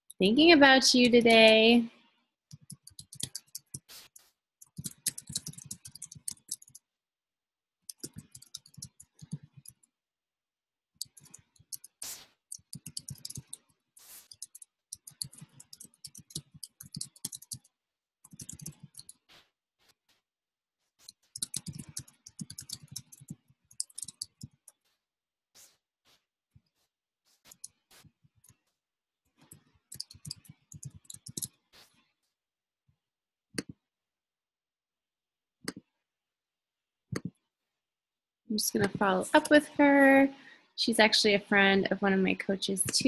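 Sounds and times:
typing on computer keyboard: 2.5s - 3.9s, 4.6s - 6.8s, 7.9s - 9.8s, 11.0s - 13.6s, 14.2s - 17.7s, 18.3s - 19.2s, 21.1s - 24.6s, 29.5s - 31.6s.

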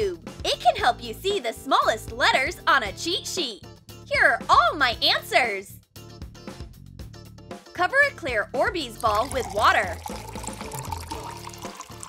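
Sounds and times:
background music: 0.0s - 12.0s
water pouring into glass bowl: 8.9s - 12.0s.

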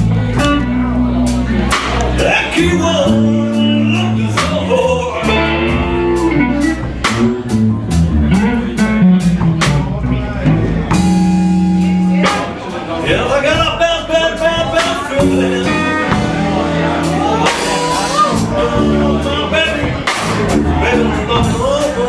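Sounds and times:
man singing: 0.0s - 7.0s, 12.0s - 22.0s
bass guitar: 0.0s - 22.0s
steady drum beat: 0.0s - 22.0s
electric guitar lines: 4.8s - 19.2s.

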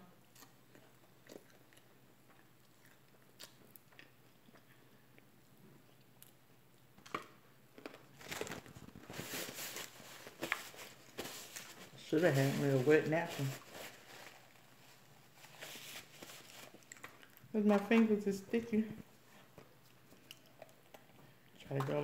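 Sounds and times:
faint chewing: 0.0s - 12.0s, 13.9s - 18.0s, 19.0s - 22.0s
paper napkin crackling: 8.2s - 16.9s.

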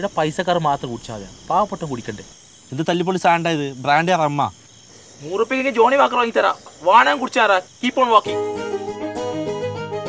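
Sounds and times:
men speaking: 0.0s - 8.4s
crickets chirring: 0.0s - 10.0s.

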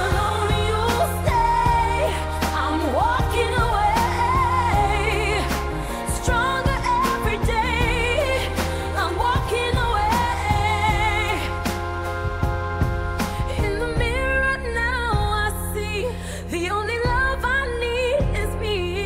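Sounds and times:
bass and beat: 0.0s - 16.0s, 16.8s - 19.0s
pop song vocals: 0.0s - 19.0s.

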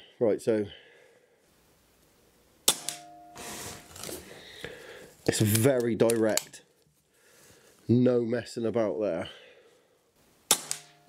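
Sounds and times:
air rifle shot crack: 2.6s - 3.1s, 10.5s - 11.0s
faint ringing tone: 2.8s - 4.0s.

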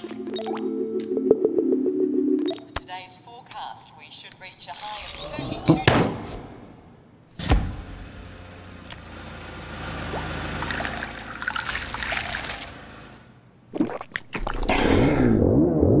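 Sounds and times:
liquid pouring into a glass: 10.1s - 12.7s.

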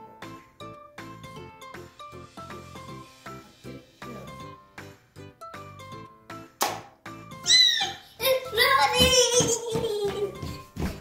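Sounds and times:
children's music with plucked beat: 0.0s - 11.0s
child squealing: 7.4s - 8.1s.

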